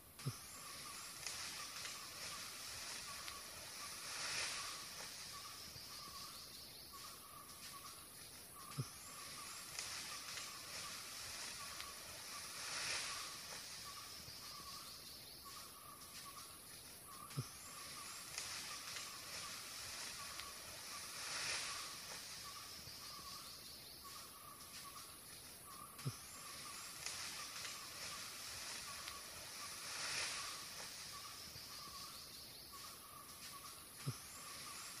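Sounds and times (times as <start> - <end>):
faint pulsing chirr: 0.0 - 35.0
steady hiss: 0.0 - 35.0.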